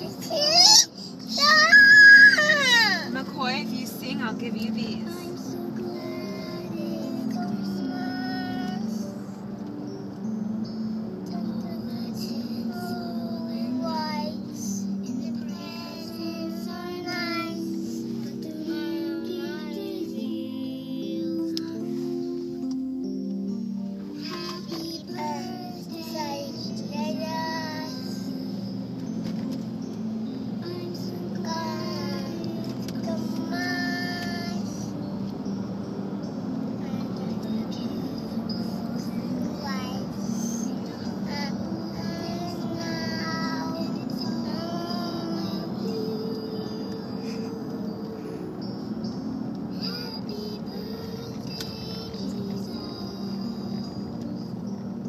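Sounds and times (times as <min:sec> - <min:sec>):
toddler girl singing: 0:00.0 - 0:10.3, 0:11.2 - 0:22.8, 0:24.1 - 0:29.9, 0:30.5 - 0:35.6, 0:36.7 - 0:54.6
background music: 0:00.0 - 0:55.0.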